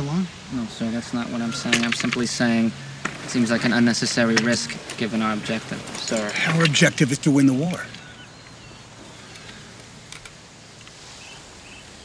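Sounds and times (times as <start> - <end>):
outdoor background hush: 0.0 - 12.0
faint bird chirps: 6.1 - 10.1, 11.1 - 12.0.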